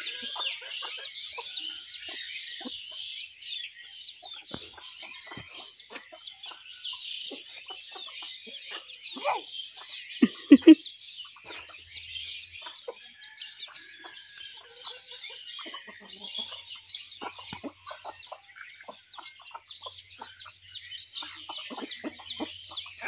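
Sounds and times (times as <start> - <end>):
chickens clucking: 0.0 - 23.0
chicks peeping: 0.0 - 23.0.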